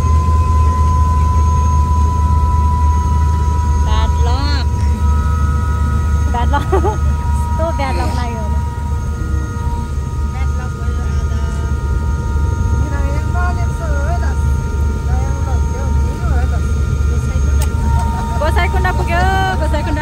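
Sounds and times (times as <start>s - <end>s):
helicopter engine and rotor drone: 0.0s - 20.0s
people talking: 3.8s - 5.1s, 6.3s - 12.0s, 12.8s - 20.0s.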